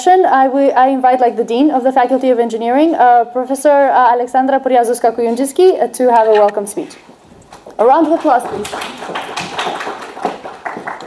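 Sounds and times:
audience clapping: 0:07.5 - 0:11.0.

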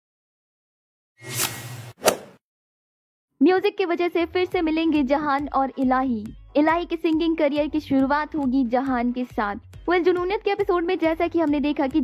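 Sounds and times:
whoosh: 0:01.2 - 0:02.4.

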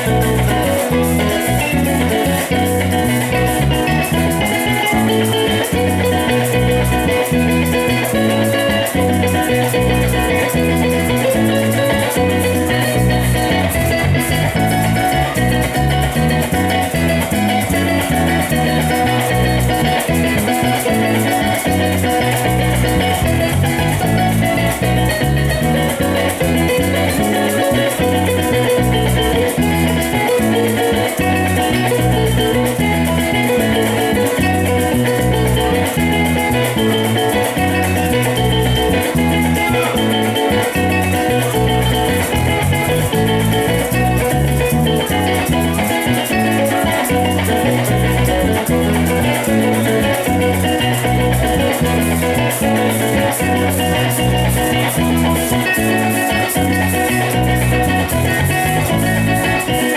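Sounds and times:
deep walking bass line: 0:00.0 - 0:59.9
maracas shaking: 0:00.0 - 0:59.9
plucked string melody: 0:00.0 - 0:59.9
strummed guitar chords: 0:00.0 - 0:59.9.

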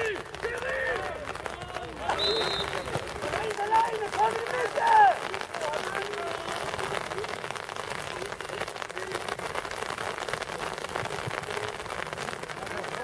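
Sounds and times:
steady rain falling: 0:00.0 - 0:13.0.

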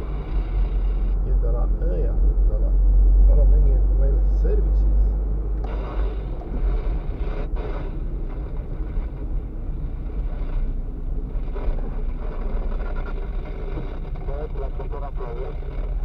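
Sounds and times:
engine and road rumble: 0:00.0 - 0:16.0.

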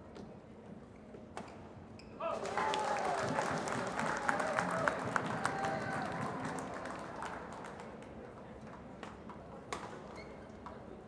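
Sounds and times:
spectators applauding: 0:02.4 - 0:08.1.

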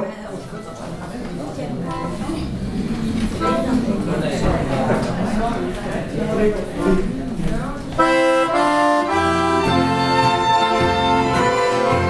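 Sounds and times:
accordion chords: 0:02.7 - 0:04.2, 0:07.9 - 0:12.0.

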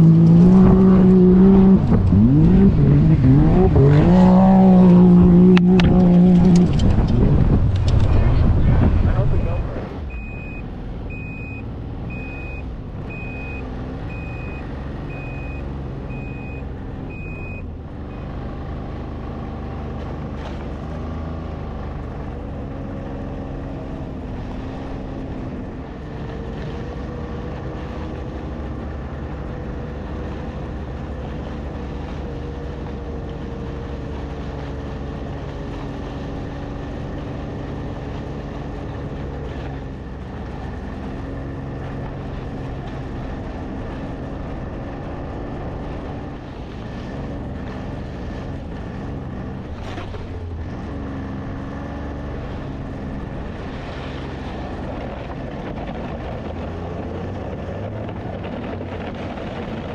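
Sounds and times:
utv engine running: 0:00.0 - 0:59.9
reversing alarm beeping: 0:09.6 - 0:18.3.

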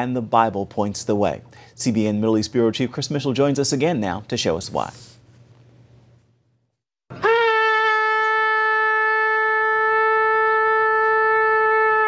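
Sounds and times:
shofar long steady note: 0:07.2 - 0:12.0.

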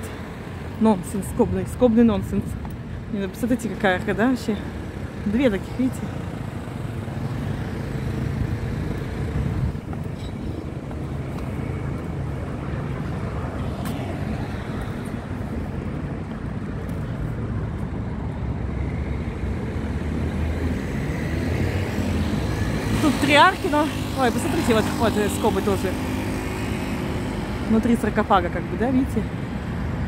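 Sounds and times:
road traffic rumble: 0:00.0 - 0:30.0.

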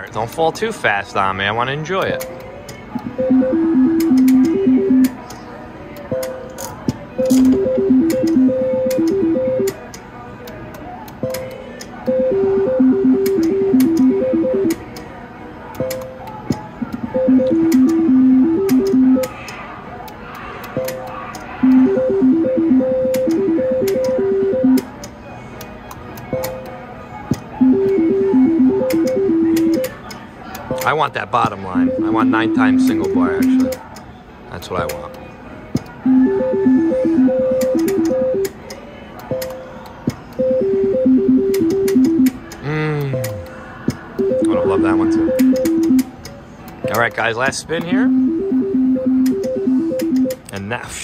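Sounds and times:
slot machine beeping tune: 0:02.0 - 0:05.2, 0:06.1 - 0:09.8, 0:11.2 - 0:14.8, 0:16.8 - 0:19.3, 0:21.6 - 0:24.9, 0:27.5 - 0:30.0, 0:30.7 - 0:33.8, 0:36.0 - 0:38.6, 0:40.4 - 0:42.4, 0:43.0 - 0:43.5, 0:44.2 - 0:46.2, 0:46.8 - 0:50.5.

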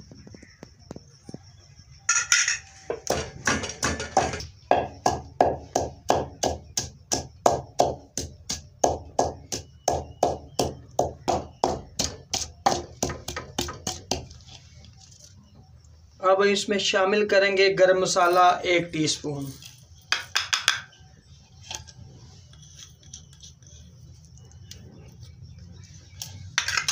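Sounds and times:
wooden pestle pounding in mortar: 0:03.0 - 0:14.4, 0:20.1 - 0:20.9.

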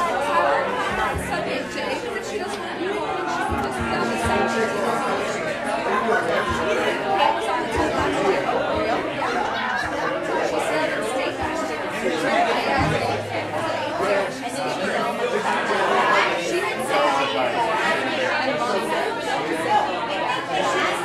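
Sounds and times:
crowd chatter: 0:00.0 - 0:21.0
low thumps: 0:00.8 - 0:02.2, 0:03.4 - 0:05.1, 0:12.7 - 0:14.6.

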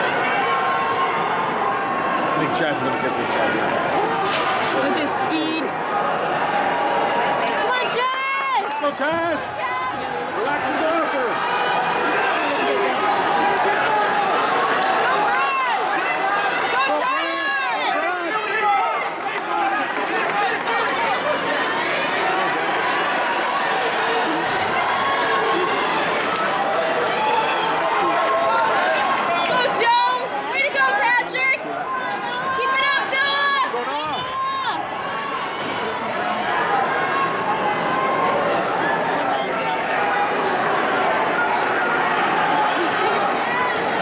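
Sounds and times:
crowd talking and shouting: 0:00.0 - 0:44.0.

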